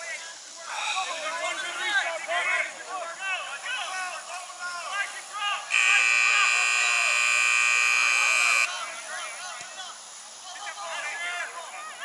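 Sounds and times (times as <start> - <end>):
high-pitched horn blast: 5.7 - 8.7.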